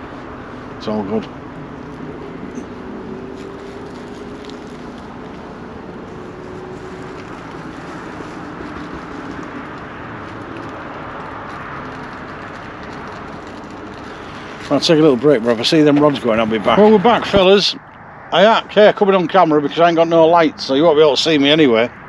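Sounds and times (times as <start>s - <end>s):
faint droning tones: 0.0s - 20.0s
distant engine rumble: 0.0s - 22.0s.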